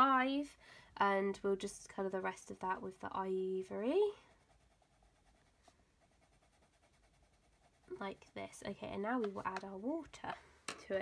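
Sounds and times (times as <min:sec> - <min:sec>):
pencil scratching on paper: 0:03.5 - 0:09.7.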